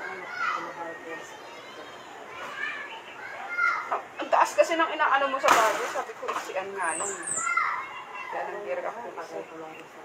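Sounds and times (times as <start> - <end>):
children calling and chattering: 0.0 - 10.0.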